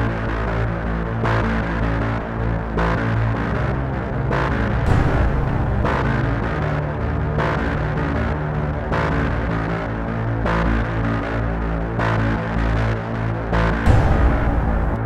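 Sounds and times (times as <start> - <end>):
suspenseful droning music: 0.0 - 15.0.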